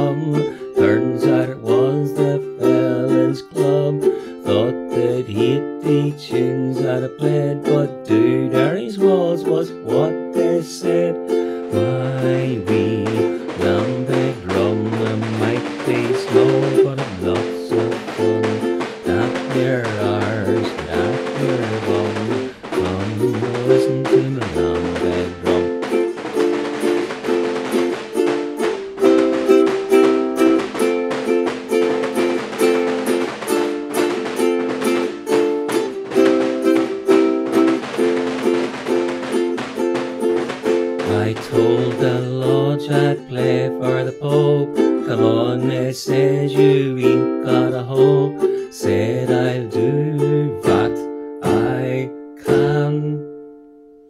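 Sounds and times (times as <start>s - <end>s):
ukulele chords and melody: 0.0s - 54.0s
large drum beaten fast: 11.7s - 48.5s.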